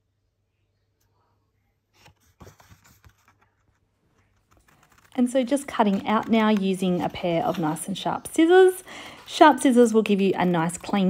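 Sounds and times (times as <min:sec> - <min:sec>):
paper rustling: 0:01.9 - 0:11.0.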